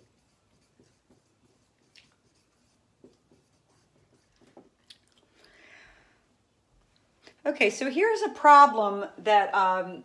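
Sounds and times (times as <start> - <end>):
marker writing on whiteboard: 0.0 - 4.8.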